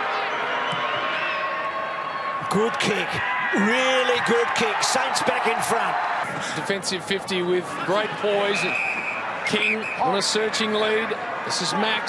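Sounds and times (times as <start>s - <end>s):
faint wavering crowd calls: 7.6s - 12.0s.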